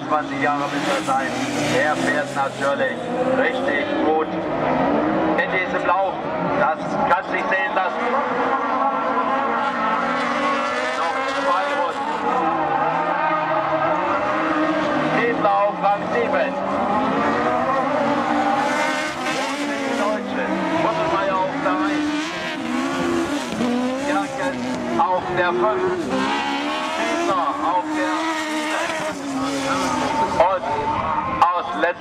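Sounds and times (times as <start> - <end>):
racing car engines accelerating: 0.0 - 32.0.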